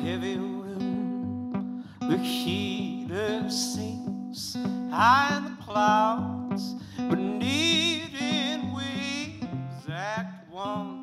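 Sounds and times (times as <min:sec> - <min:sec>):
acoustic guitar strummed: 0:00.0 - 0:11.0
man singing: 0:00.0 - 0:11.0.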